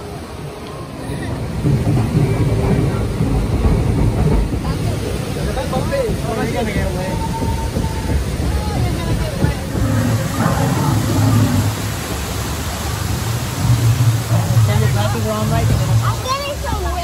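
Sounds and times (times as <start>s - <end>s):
rushing whitewater: 0.0s - 17.0s.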